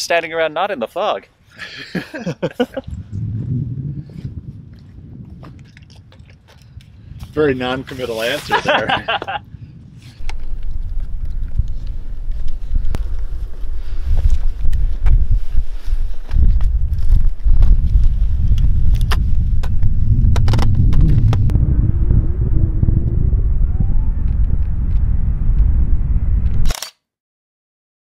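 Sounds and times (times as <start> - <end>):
wind buffeting microphone: 2.2 - 26.7.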